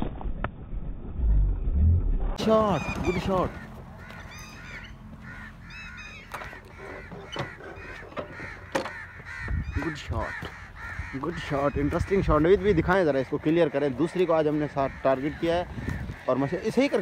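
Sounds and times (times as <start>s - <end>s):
birds calling: 2.4s - 17.0s.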